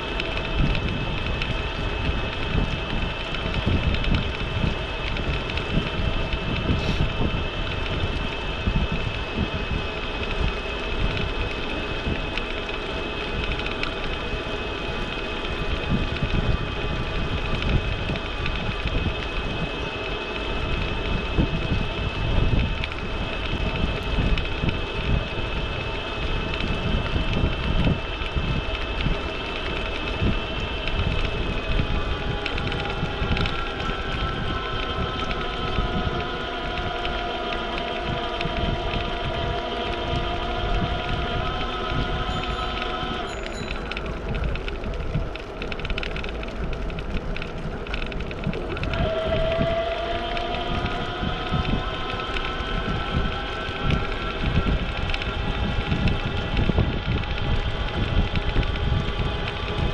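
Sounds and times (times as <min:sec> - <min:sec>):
high whine from bike: 0:00.0 - 0:59.9
low hums from bike: 0:00.0 - 0:59.9
wind buffeting microphone: 0:00.0 - 0:59.9.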